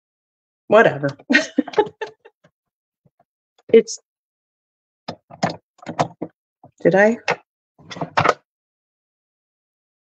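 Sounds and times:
woman's voice: 0.7s - 2.0s, 3.7s - 4.1s, 6.8s - 7.3s.

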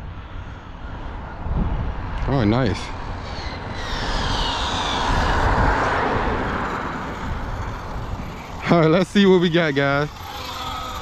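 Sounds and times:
steady rushing noise: 0.0s - 11.0s
electric motor whine: 2.9s - 11.0s.

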